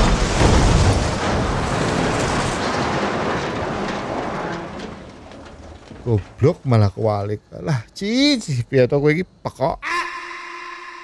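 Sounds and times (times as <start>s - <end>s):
car crash rumble: 0.0s - 7.3s.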